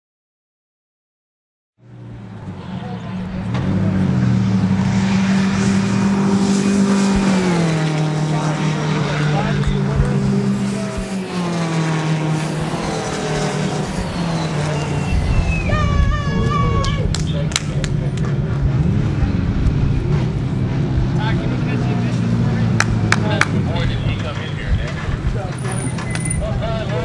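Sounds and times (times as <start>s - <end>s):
race car engine running hard: 1.8s - 27.0s.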